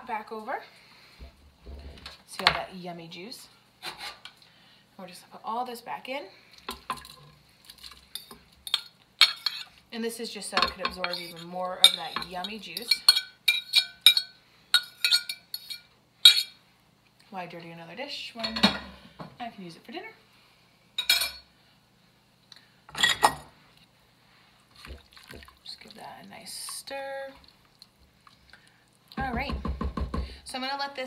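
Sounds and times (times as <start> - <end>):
fork scraping a ceramic plate: 3.8 - 4.3, 10.9 - 16.6
utensils and dishes clattering: 6.7 - 9.7, 10.5 - 16.5, 18.4 - 19.0, 21.0 - 21.4, 22.9 - 23.5.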